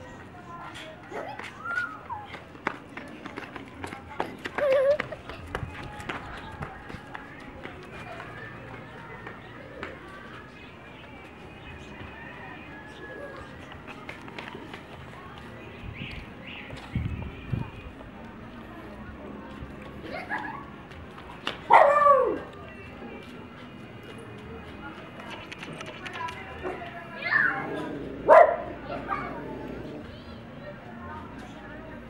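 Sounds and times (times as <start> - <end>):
flip-flops slapping on concrete: 13.4 - 15.5, 20.1 - 21.7.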